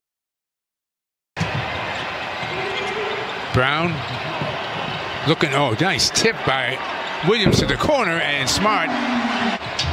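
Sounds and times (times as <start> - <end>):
arena background noise: 1.4 - 9.9.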